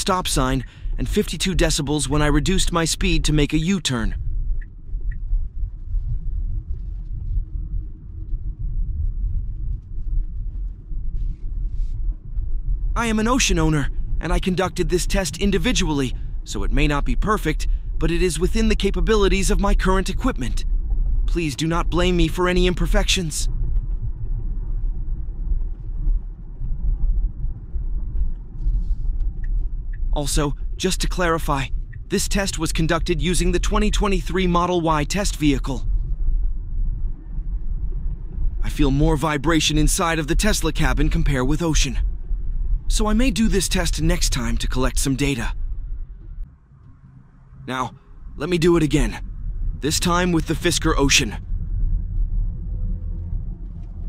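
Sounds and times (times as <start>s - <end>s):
road and tyre rumble: 51.4s - 54.0s.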